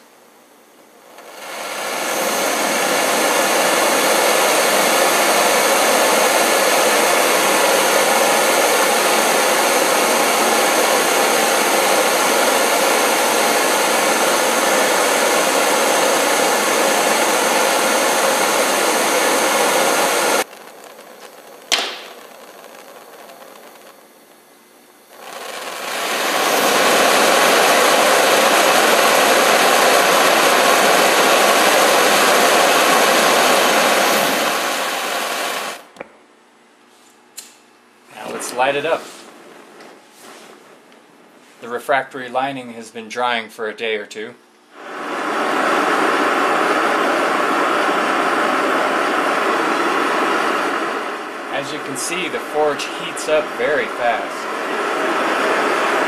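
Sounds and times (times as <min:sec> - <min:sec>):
gas burner hissing: 0:00.8 - 0:35.9, 0:37.4 - 0:39.4, 0:44.7 - 0:56.0
sharp click: 0:37.4 - 0:37.6.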